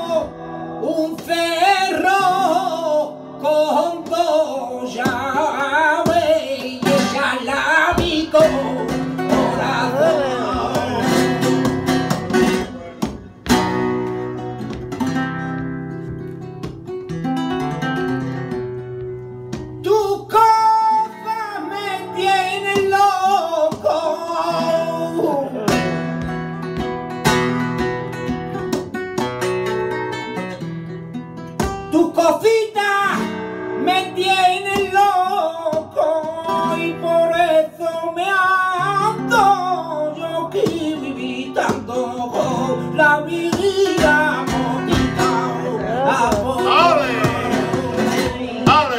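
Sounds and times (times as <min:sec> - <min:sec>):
flamenco guitar: 0:00.0 - 0:48.9
man singing flamenco: 0:00.0 - 0:48.9.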